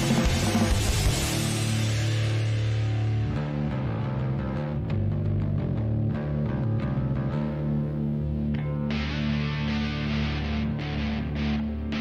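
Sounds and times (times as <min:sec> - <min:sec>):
drum hits: 0:00.0 - 0:03.1
electric guitar chord ringing: 0:00.0 - 0:12.0
pop-punk rock music: 0:00.0 - 0:12.0.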